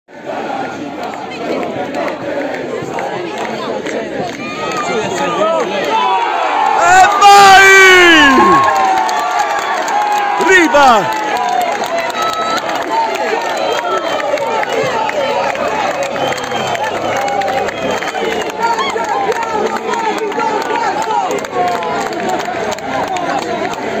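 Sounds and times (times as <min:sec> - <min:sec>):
football supporters shouting and cheering: 0:00.1 - 0:24.0.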